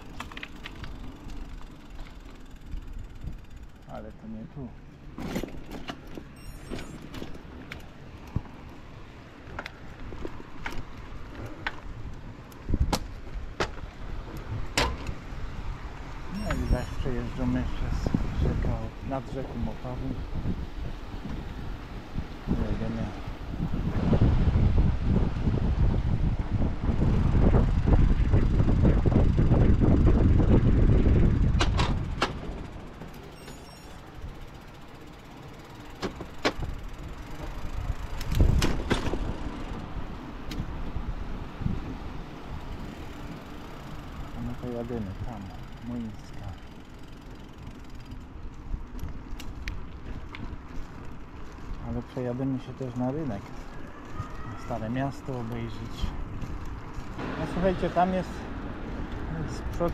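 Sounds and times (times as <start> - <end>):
bike clicks and knocks: 0.0 - 4.0, 5.0 - 15.3, 29.1 - 41.0, 42.7 - 54.4, 55.3 - 57.8, 58.9 - 59.9
wind and rolling tyres: 0.0 - 59.9.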